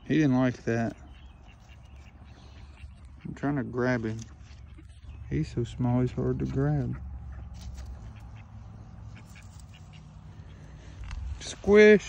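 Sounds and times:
fingers rustling through leaves: 0:00.8 - 0:12.0.

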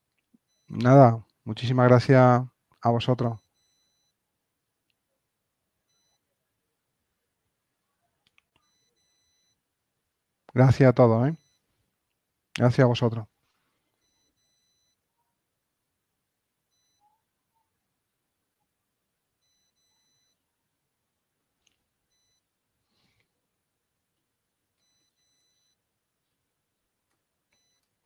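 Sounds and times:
faint high-pitched beeps: 0:00.4 - 0:01.3, 0:03.2 - 0:04.2, 0:05.8 - 0:06.3, 0:08.5 - 0:09.7, 0:11.2 - 0:11.7, 0:13.9 - 0:15.4, 0:16.7 - 0:17.7, 0:19.4 - 0:20.5, 0:22.1 - 0:22.5, 0:24.8 - 0:25.9, 0:27.5 - 0:28.0.

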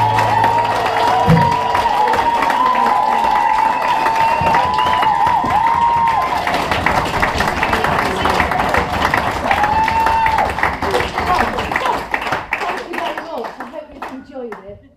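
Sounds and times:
whoops: 0:00.0 - 0:06.6, 0:09.4 - 0:10.7
audience applauding and cheering: 0:00.0 - 0:14.6.

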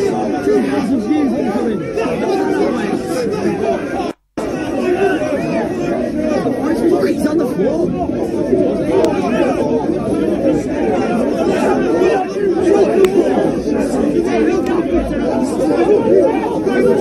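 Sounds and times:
babble of men's voices: 0:00.0 - 0:17.0.

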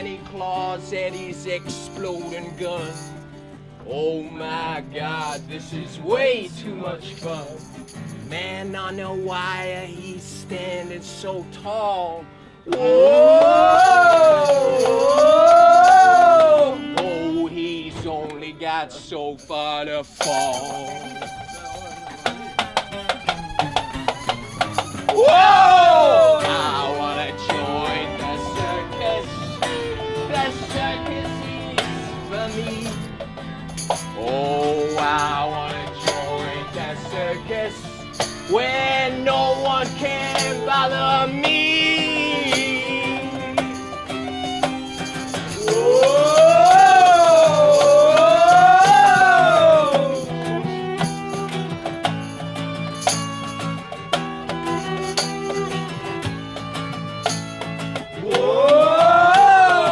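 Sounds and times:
strummed acoustic guitar: 0:00.0 - 0:59.9
tambourine hits: 0:01.0 - 0:03.6, 0:07.1 - 0:09.4, 0:12.8 - 0:17.4, 0:19.4 - 0:59.9
violin long sliding note: 0:25.6 - 0:39.3.

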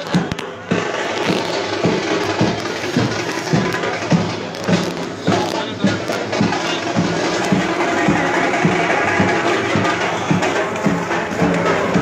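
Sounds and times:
crowd noise: 0:00.0 - 0:12.0
drums beating: 0:00.0 - 0:12.0.

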